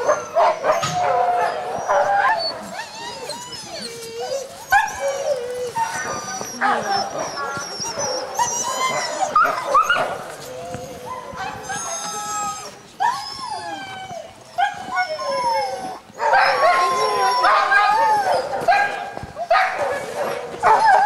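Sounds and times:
sled dogs barking and howling: 0.0s - 21.0s.

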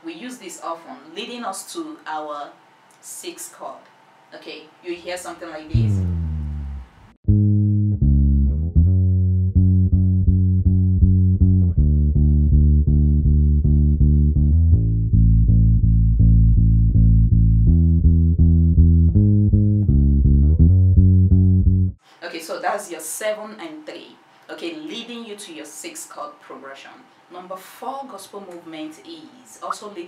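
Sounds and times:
solo electric bass guitar: 5.7s - 22.0s.

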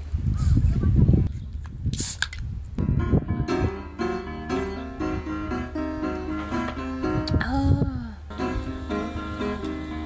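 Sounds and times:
wind buffeting microphone: 0.0s - 10.0s
piano music: 2.8s - 7.7s, 8.3s - 10.0s.

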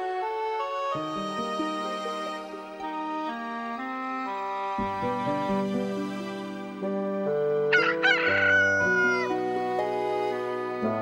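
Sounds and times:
soft background music: 0.0s - 11.0s
rooster crowing: 7.7s - 9.4s.

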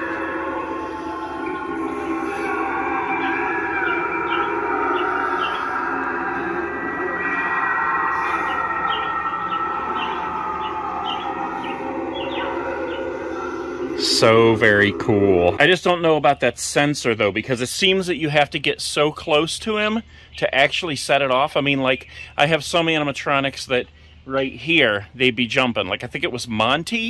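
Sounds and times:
siren-like bending tone: 0.0s - 16.0s
eerie droning: 0.0s - 16.3s.

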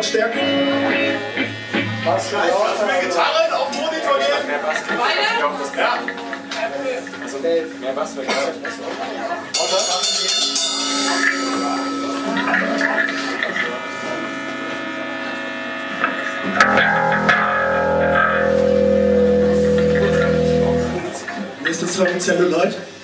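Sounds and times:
electric guitar chords ringing: 0.0s - 21.6s.

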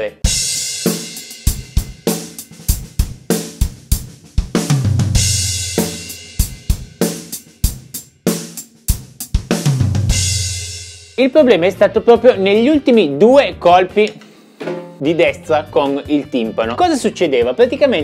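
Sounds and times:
drum kit fill: 0.0s - 11.4s, 14.0s - 17.0s.

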